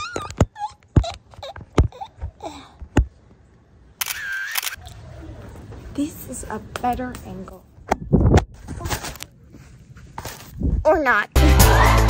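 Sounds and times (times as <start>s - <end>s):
woman making squeaky vocal noises: 0.0s - 2.7s.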